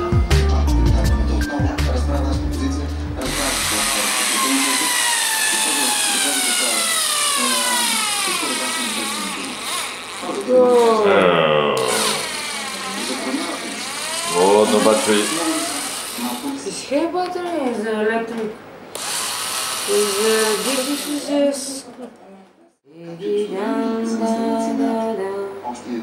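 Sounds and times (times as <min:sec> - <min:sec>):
cordless drill whining: 0:03.2 - 0:11.0, 0:11.8 - 0:16.7, 0:19.0 - 0:21.4.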